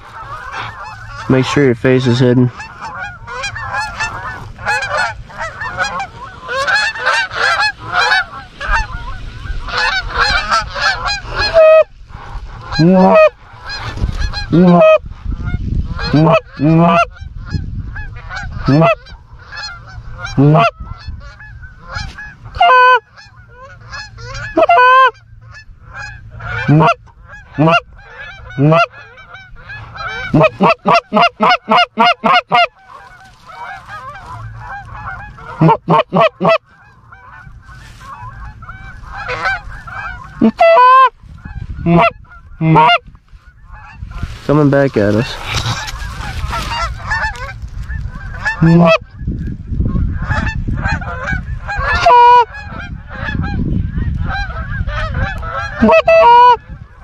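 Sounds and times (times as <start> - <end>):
goose calls: 0.0 - 49.3, 49.9 - 57.0
geese honking overhead: 0.0 - 57.0.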